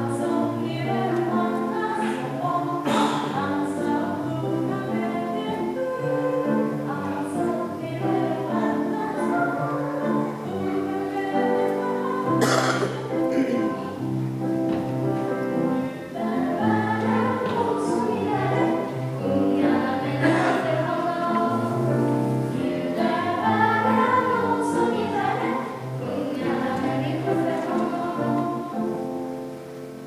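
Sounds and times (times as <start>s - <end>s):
children's choir singing: 0.0s - 30.0s.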